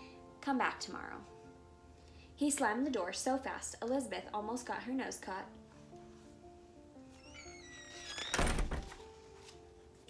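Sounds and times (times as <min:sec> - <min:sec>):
soft background music: 0:00.0 - 0:10.0
door slam thud: 0:08.3 - 0:09.0.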